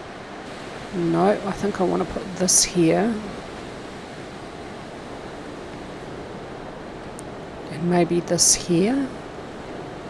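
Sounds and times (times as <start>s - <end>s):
microphone background hiss: 0.0s - 10.0s.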